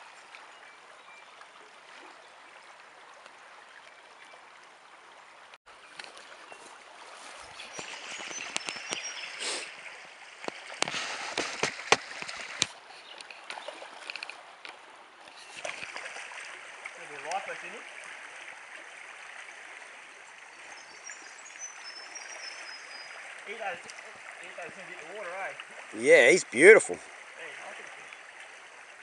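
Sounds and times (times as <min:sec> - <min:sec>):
creek water running over stones: 0:00.0 - 0:29.0.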